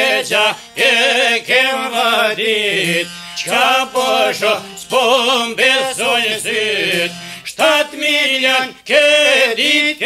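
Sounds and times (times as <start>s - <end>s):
plucked lutes: 0.0s - 7.7s
man singing folk song: 0.0s - 10.0s.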